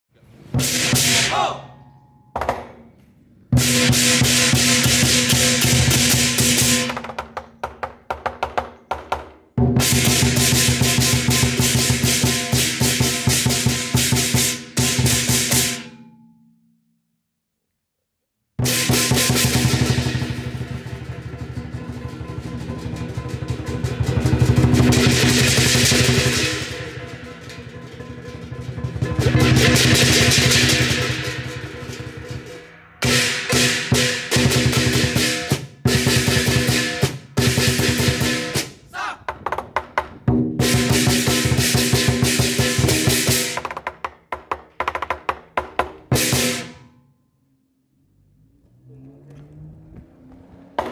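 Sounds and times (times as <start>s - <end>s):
large drum rolls and strokes: 0.4s - 1.4s, 3.5s - 7.2s, 9.6s - 15.8s, 18.6s - 43.6s
brass cymbals clashing: 0.6s - 1.4s, 3.6s - 6.9s, 9.8s - 16.0s, 18.6s - 38.8s.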